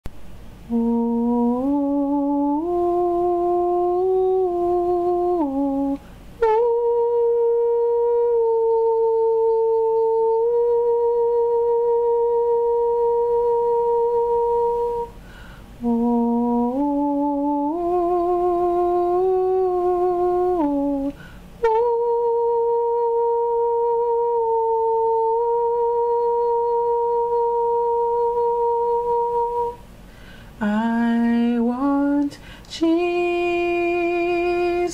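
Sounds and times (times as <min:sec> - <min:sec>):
person humming a slow melody: 0:00.5 - 0:34.9.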